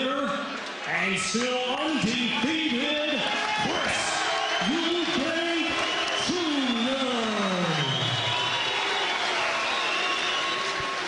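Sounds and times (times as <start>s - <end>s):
crowd cheering and applauding: 0.0s - 11.0s.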